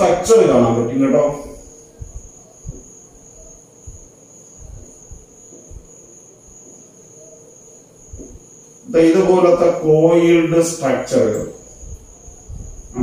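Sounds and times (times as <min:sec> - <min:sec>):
steady high-pitched whine: 0:00.0 - 0:13.0.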